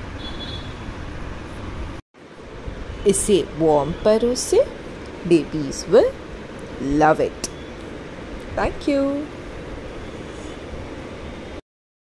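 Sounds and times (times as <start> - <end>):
steady background hiss and rumble: 0.8 - 11.6.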